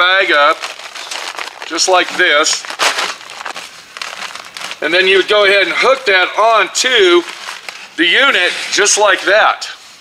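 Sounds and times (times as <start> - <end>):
paper dust bag crinkling: 0.0 - 9.3.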